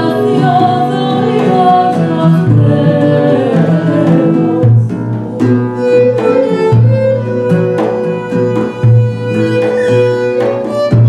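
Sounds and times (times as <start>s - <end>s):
woman singing folk song: 0.0s - 7.5s
oud: 0.0s - 11.0s
violin: 0.0s - 11.0s
flute: 5.4s - 11.0s.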